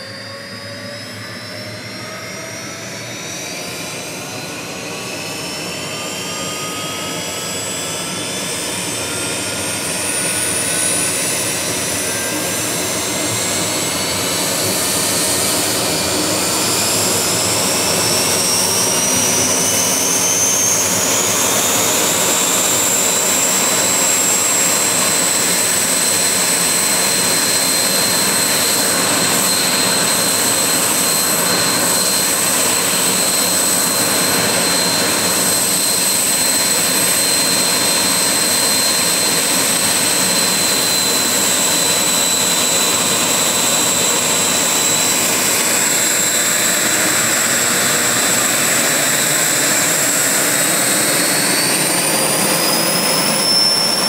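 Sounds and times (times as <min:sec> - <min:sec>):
high jet whine: 0:00.0 - 0:54.0
jet engine rush: 0:00.0 - 0:54.0
lower jet whine: 0:00.0 - 0:54.0.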